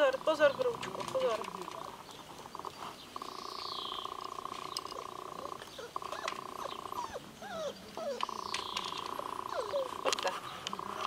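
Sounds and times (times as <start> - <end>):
puppies whining: 4.3 - 11.0.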